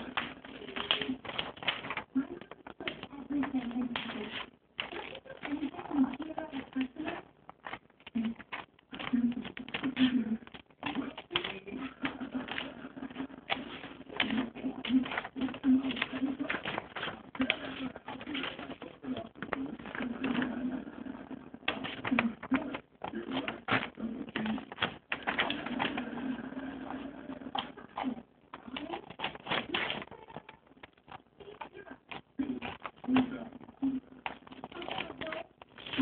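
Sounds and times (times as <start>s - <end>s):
scissors snipping paper: 0.0s - 36.0s.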